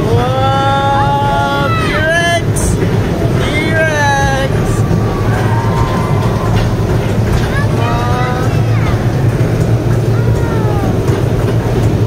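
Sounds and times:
ride car rumbling along track: 0:00.0 - 0:12.0.

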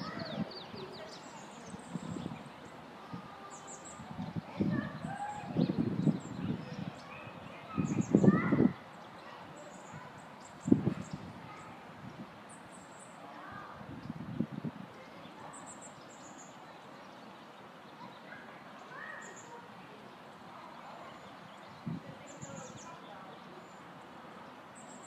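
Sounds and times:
outdoor background noise: 0:00.0 - 0:25.0
small birds chirping: 0:00.0 - 0:25.0.

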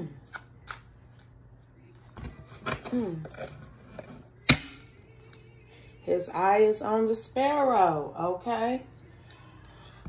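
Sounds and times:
cards snapping: 0:00.2 - 0:01.2.

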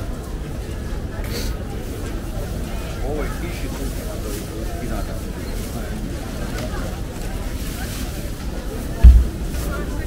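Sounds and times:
faint crowd voices: 0:00.0 - 0:10.0
wind rumbling on microphone: 0:09.0 - 0:09.8.

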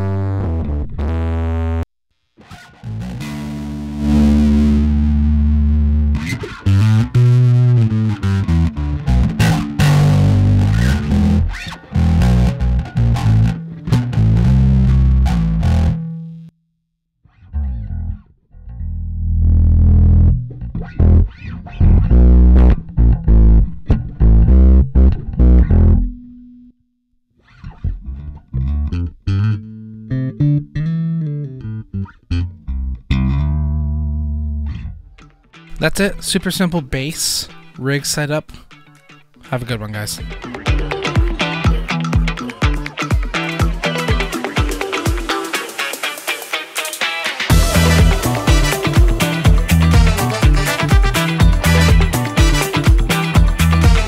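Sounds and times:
electric bass riff through effects: 0:00.0 - 0:01.8, 0:02.4 - 0:16.5, 0:17.3 - 0:26.7, 0:27.5 - 0:36.0, 0:40.2 - 0:54.0.

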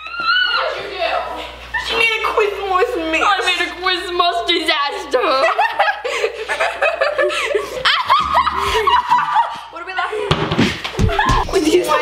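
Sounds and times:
girls laughing and giggling: 0:00.0 - 0:03.8, 0:04.9 - 0:12.0.

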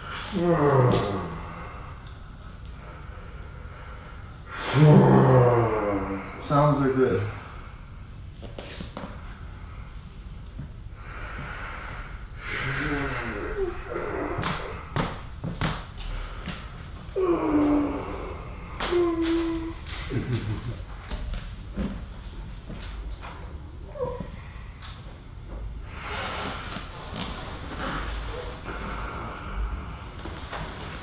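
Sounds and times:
hummed groans: 0:00.0 - 0:08.0, 0:09.2 - 0:31.0
person breathing out heavily: 0:11.0 - 0:15.2.

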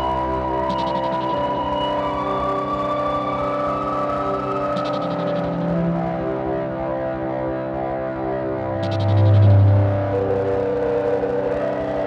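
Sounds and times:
sustained synth tones: 0:00.6 - 0:01.7, 0:04.5 - 0:06.4, 0:08.7 - 0:10.8
fluttering low bass: 0:08.8 - 0:10.2.

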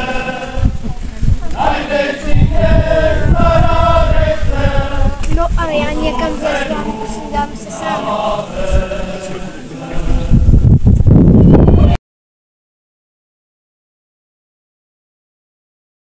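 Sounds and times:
group singing folk song: 0:00.0 - 0:12.0.

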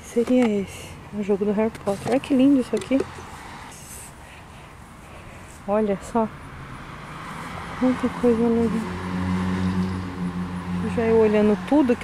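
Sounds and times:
engine droning: 0:00.0 - 0:12.0.

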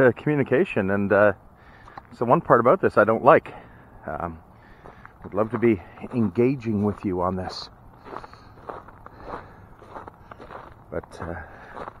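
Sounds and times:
footsteps on snow: 0:04.6 - 0:12.0.

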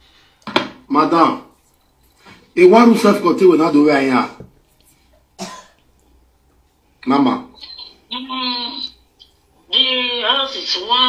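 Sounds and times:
person speaking: 0:02.5 - 0:04.9
person coughing: 0:05.4 - 0:05.8.

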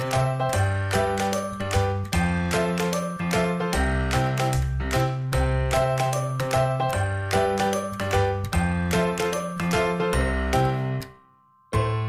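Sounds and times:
chiming instrumental tune: 0:00.0 - 0:12.0.

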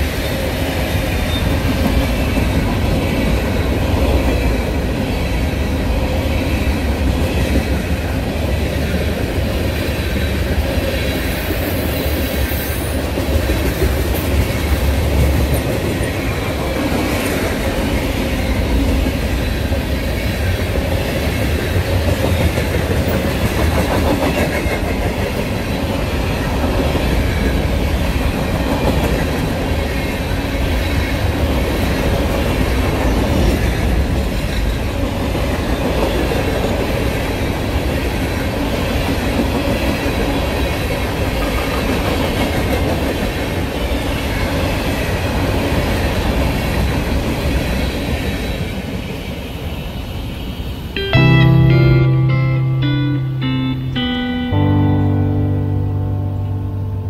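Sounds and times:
freight train wheels rumbling on rails: 0:00.0 - 0:51.0.

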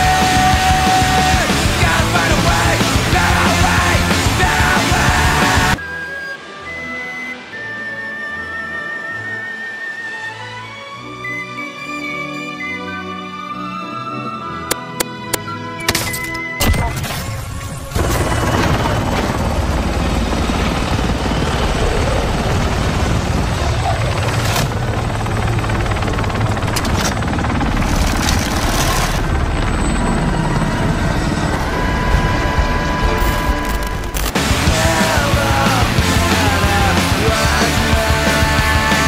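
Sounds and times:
helicopter rumble: 0:00.0 - 0:06.8, 0:16.6 - 0:39.0
soft music: 0:01.3 - 0:17.2.

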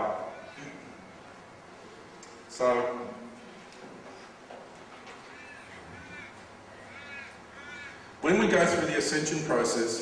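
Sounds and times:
faint bird calls: 0:00.1 - 0:01.6, 0:05.0 - 0:08.2.

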